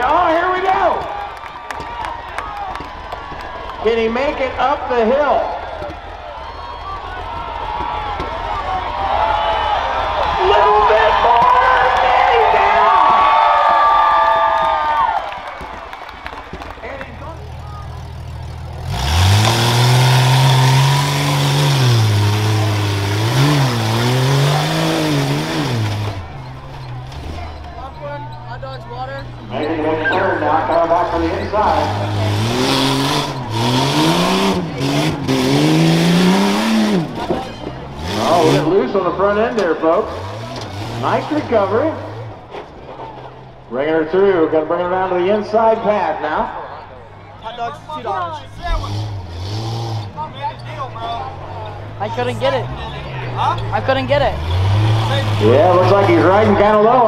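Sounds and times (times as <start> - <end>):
suv engine revving: 16.0 - 46.4, 47.0 - 57.0.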